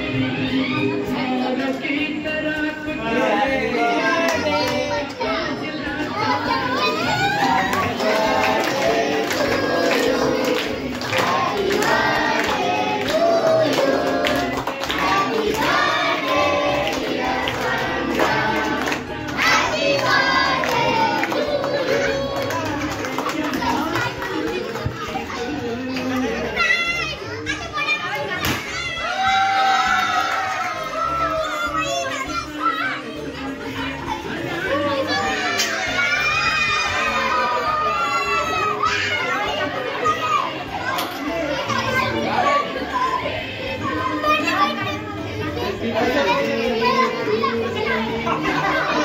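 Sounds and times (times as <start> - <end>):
children and adults talking: 0.0 - 49.0
confetti popper pop: 28.4 - 28.8.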